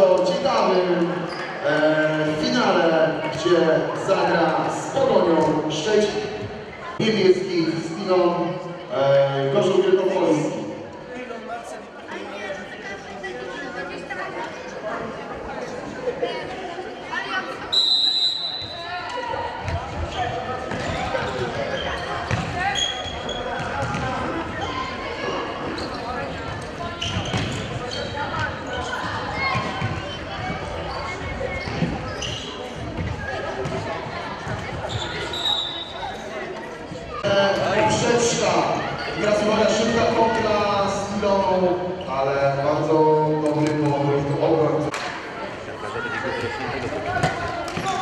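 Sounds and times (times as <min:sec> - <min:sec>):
echoing crowd voices: 0:00.0 - 0:48.0
referee's whistle blast: 0:17.7 - 0:18.8.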